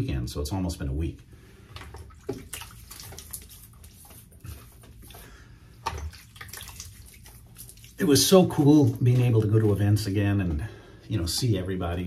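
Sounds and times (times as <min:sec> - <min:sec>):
water splashing at a sink: 0:01.6 - 0:10.6.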